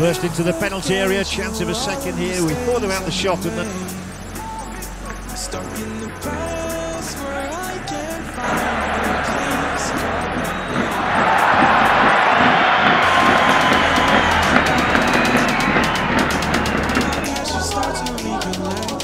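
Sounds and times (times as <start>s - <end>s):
background music with a beat: 0.0s - 19.0s
stadium crowd roar: 0.0s - 19.0s.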